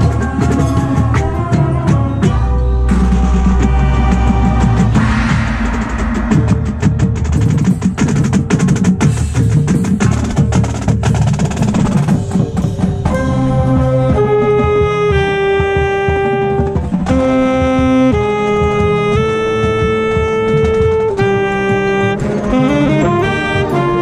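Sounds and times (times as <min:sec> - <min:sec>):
wind instruments holding chords: 0:00.0 - 0:07.8, 0:13.1 - 0:24.0
marching band drums and percussion: 0:00.0 - 0:24.0.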